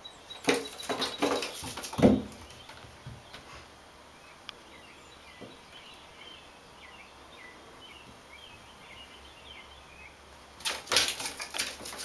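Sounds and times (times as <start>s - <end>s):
cat claws scraping on bathtub: 10.6s - 12.0s.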